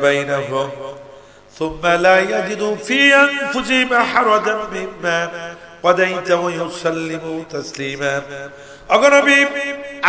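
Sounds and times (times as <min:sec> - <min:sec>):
man chanting into a microphone: 0:00.0 - 0:10.0
person breathing: 0:01.1 - 0:01.6, 0:08.5 - 0:08.9.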